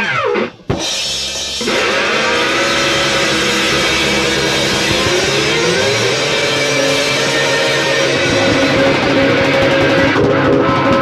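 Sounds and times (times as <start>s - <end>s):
bass guitar drone: 0.0s - 11.0s
distorted electric guitar: 0.0s - 11.0s
drums: 0.0s - 11.0s.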